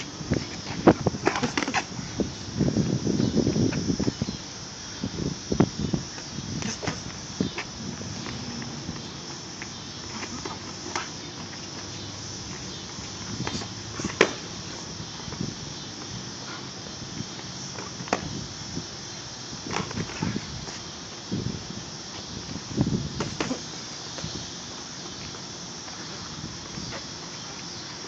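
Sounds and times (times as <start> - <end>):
steady outdoor hiss: 0.0 - 28.0.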